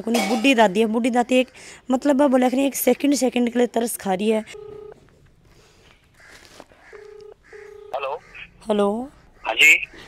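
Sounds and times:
telephone ringback tone: 4.5 - 5.0, 7.0 - 8.1.

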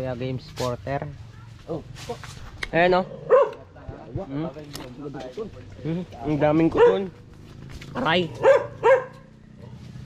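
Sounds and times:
small dog barking: 3.2 - 3.6, 6.7 - 7.1, 8.4 - 9.8.

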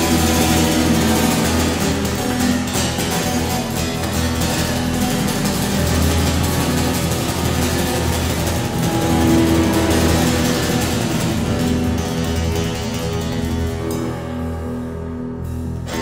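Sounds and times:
acoustic guitar: 0.0 - 16.0
electric guitar: 0.0 - 16.0.

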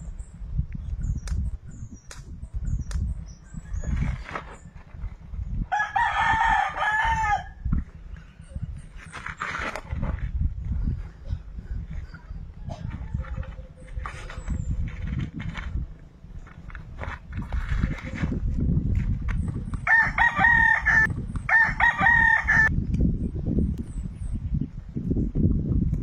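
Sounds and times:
rooster crowing: 5.7 - 7.6, 19.9 - 22.7.

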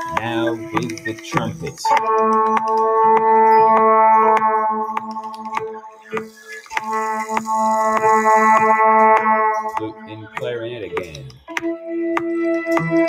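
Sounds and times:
held synthesizer notes: 0.0 - 13.0
steady ticking beat: 0.0 - 13.0
hissing swell: 6.1 - 8.6.

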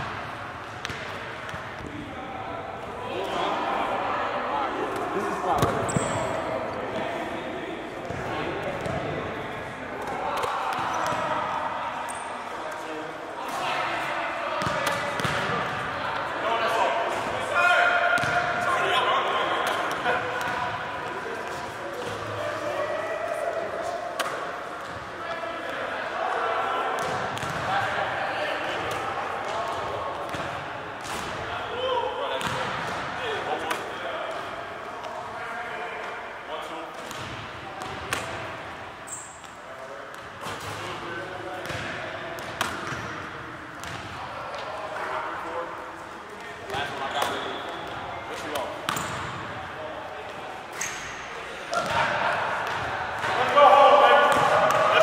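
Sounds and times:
people talking: 0.9 - 30.6, 39.7 - 50.7, 51.3 - 55.0
basketballs bouncing on wooden floor: 18.2 - 18.4, 41.6 - 43.0, 43.8 - 44.1.

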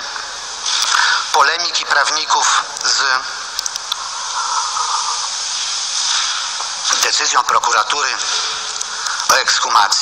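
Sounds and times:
radio static hiss: 0.0 - 10.0.

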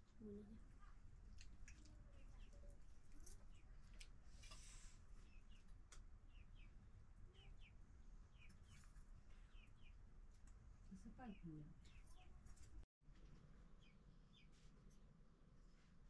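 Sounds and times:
small birds chirping: 0.2 - 12.8, 13.8 - 14.6.

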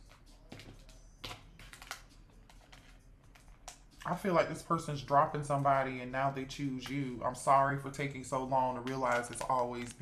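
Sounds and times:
cards clicking on tabletop: 8.8 - 10.0.

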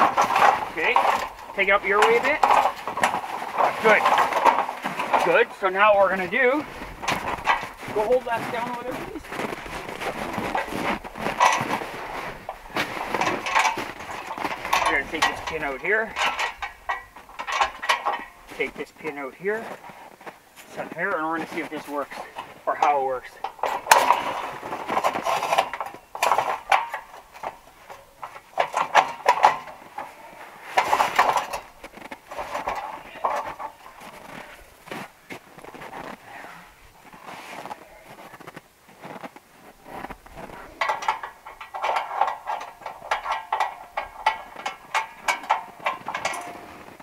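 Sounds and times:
steel scaffold frames clanking: 0.0 - 36.2, 37.0 - 47.0
metallic knocks and clinks: 40.7 - 47.0.

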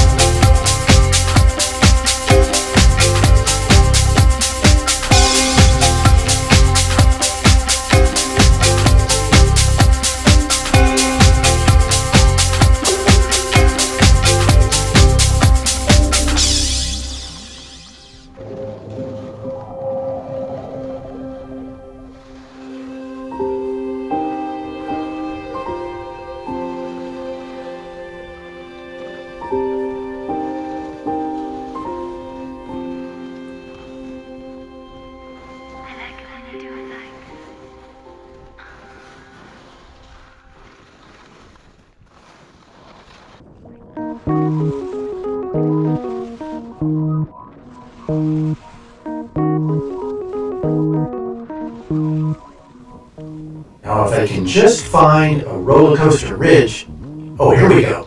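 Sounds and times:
electronic music: 0.0 - 18.4, 44.0 - 58.0
slow soft music with held notes: 0.0 - 18.6, 21.0 - 40.5, 43.9 - 57.8
skis sliding over snow: 37.5 - 45.2.

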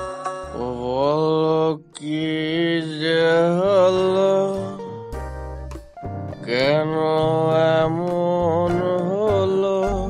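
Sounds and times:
plucked string notes: 0.0 - 10.0.

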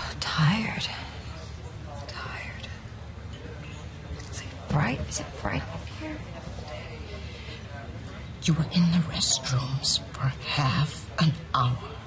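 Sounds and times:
breathy whispering: 0.0 - 3.0
low steady hum: 0.0 - 12.0.

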